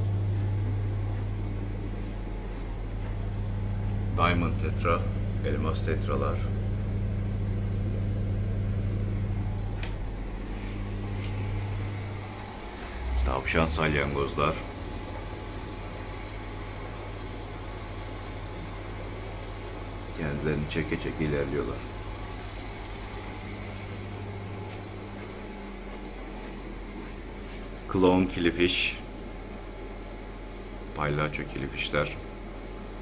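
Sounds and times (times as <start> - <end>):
air pumps humming: 0.0 - 33.0.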